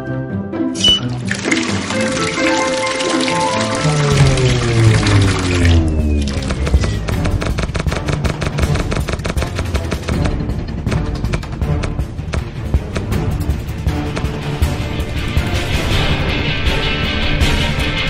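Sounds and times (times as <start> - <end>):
music sliding down in pitch: 0.8 - 7.4
water pouring from a pipe: 0.8 - 7.4
music with fast clicking beat: 1.9 - 16.4.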